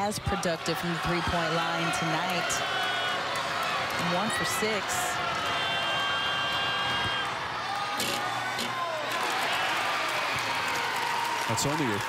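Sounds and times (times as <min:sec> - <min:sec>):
crowd cheering and whooping: 0:00.0 - 0:12.0.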